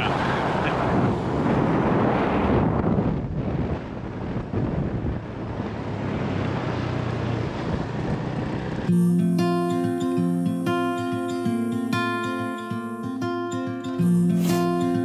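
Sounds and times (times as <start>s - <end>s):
wind rushing over microphone: 0.0s - 8.9s
scooter engine running: 5.1s - 9.0s.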